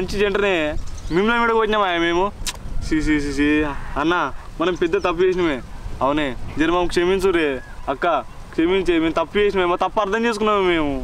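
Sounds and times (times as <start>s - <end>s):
people speaking: 0.0s - 11.0s
sharp click: 2.4s - 2.6s.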